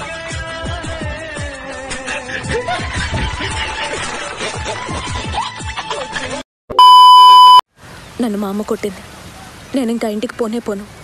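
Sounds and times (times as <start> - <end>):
music: 0.0 - 6.4
electronic beep: 6.7 - 7.6.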